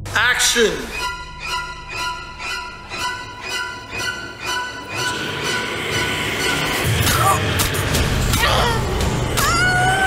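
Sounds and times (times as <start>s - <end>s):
harsh screeching drone: 0.8s - 10.0s.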